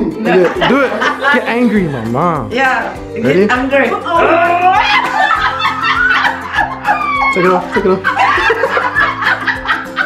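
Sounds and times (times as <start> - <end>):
people laughing and snickering: 0.0 - 2.1, 4.1 - 10.0
background music with steady beat: 0.0 - 10.0.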